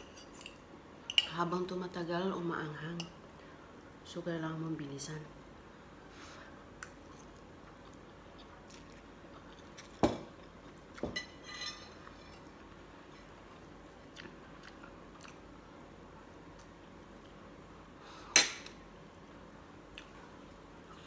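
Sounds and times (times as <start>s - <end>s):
faint chewing: 6.8s - 11.0s, 12.0s - 15.5s.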